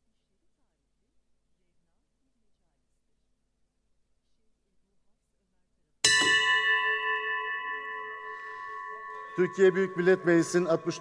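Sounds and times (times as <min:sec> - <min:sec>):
bell chime ringing: 0:06.0 - 0:11.0.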